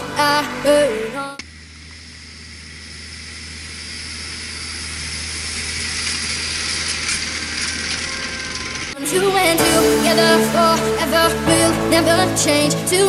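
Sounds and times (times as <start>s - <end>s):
blower fan hiss: 0.0s - 10.7s
tractor engine under load: 3.6s - 9.0s.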